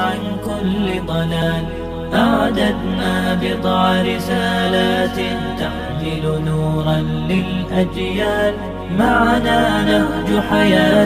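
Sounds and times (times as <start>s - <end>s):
voices chanting long notes: 0.0s - 11.0s.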